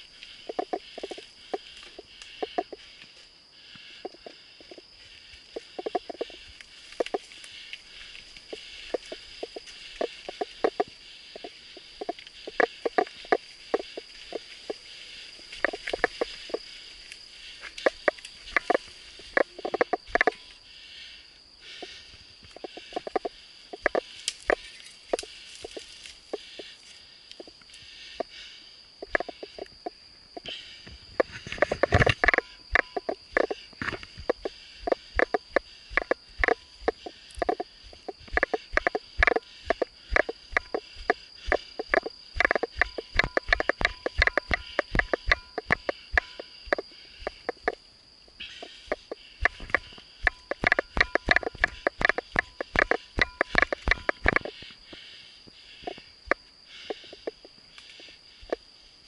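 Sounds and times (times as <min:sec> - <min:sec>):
high-pitched insect drone: 0:00.0 - 0:59.0.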